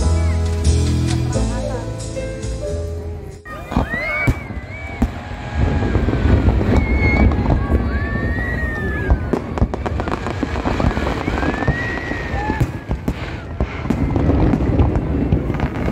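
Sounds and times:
rising firework whistles: 0:00.0 - 0:00.8, 0:03.5 - 0:15.9
fireworks crackling and banging: 0:00.0 - 0:15.9
low rumble: 0:04.4 - 0:12.1.

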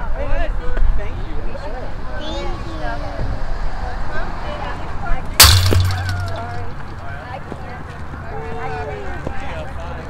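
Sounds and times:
sharp crack: 0:05.4 - 0:07.2.

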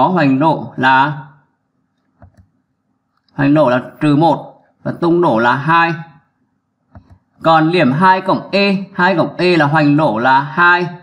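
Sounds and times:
man talking: 0:00.0 - 0:01.4, 0:03.3 - 0:06.2, 0:07.4 - 0:11.0.

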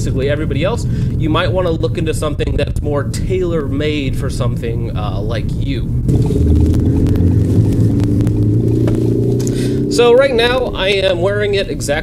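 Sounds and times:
car engine and road noise drone: 0:00.0 - 0:12.0.

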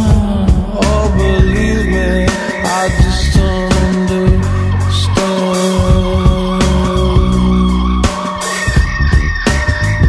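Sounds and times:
drum hits: 0:00.0 - 0:10.0
steady held tones: 0:00.0 - 0:10.0.

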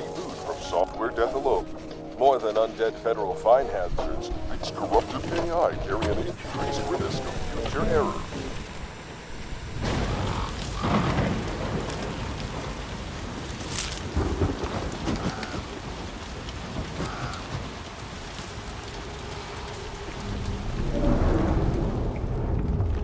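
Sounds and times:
heavy rain: 0:00.0 - 0:23.0
thunder rolling: 0:04.9 - 0:23.0.

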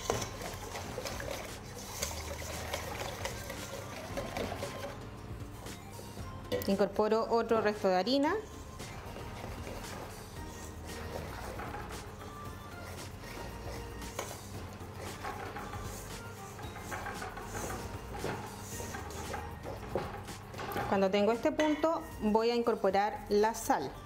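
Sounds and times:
whisk scraping metal bowl: 0:00.0 - 0:05.0, 0:08.5 - 0:21.6
quiet background music: 0:00.0 - 0:24.0.

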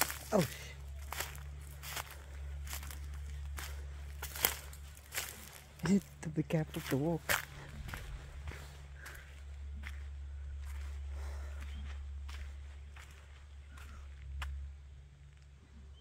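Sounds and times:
footsteps on dirt and leaves: 0:00.0 - 0:15.8
low rumble: 0:00.0 - 0:16.0.

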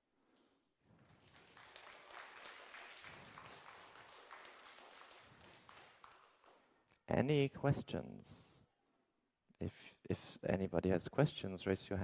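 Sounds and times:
audience applause: 0:01.0 - 0:06.7.

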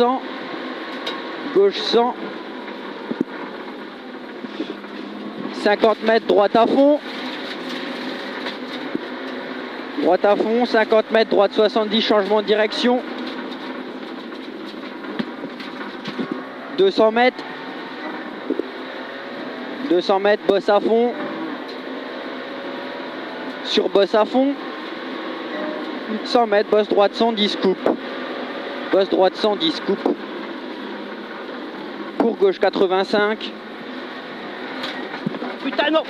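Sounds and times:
car engine and tyre noise: 0:00.0 - 0:36.0.

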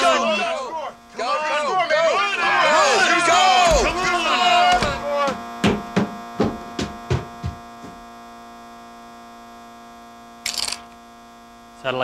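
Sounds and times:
electric game board buzzing: 0:00.0 - 0:12.0.

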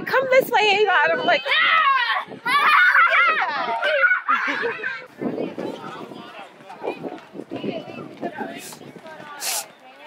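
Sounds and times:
playground voices and movement: 0:00.0 - 0:10.0.

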